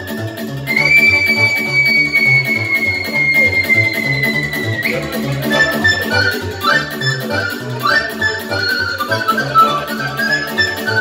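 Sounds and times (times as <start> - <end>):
pan flute playing dance tune: 0.0 - 11.0.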